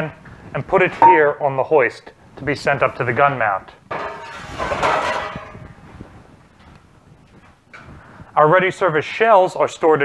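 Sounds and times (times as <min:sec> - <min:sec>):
metal canister scraping and clanking: 0:04.0 - 0:05.6.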